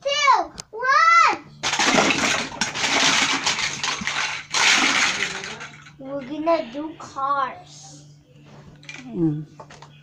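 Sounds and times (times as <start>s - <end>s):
plastic blocks clattering on floor: 1.6s - 6.4s.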